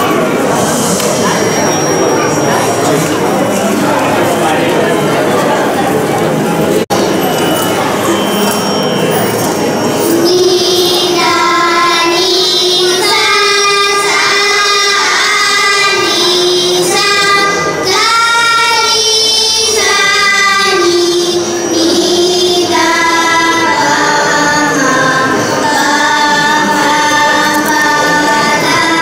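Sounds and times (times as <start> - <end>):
girls singing together: 9.8 - 29.0.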